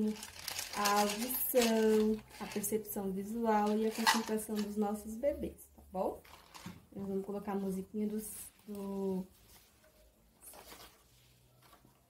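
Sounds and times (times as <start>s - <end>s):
paper rustling: 0.0s - 2.6s, 8.7s - 12.0s.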